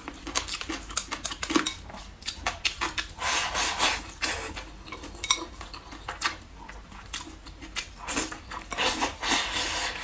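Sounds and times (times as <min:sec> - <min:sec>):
rice scraped from bowl: 0:08.7 - 0:10.0.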